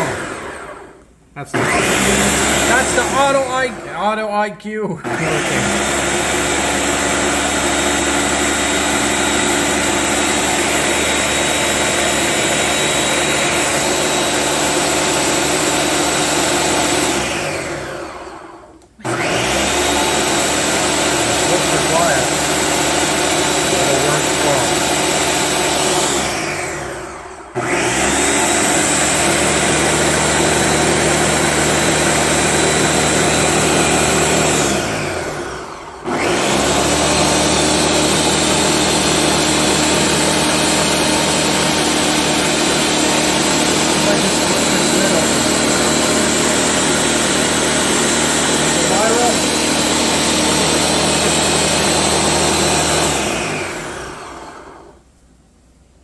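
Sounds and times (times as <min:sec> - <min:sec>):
blender motor running: 0:00.0 - 0:04.2, 0:05.0 - 0:55.0.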